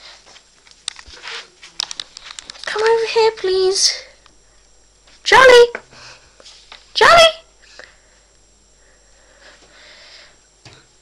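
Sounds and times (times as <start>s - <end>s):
crinkling crackling clicks: 0.4s - 3.0s.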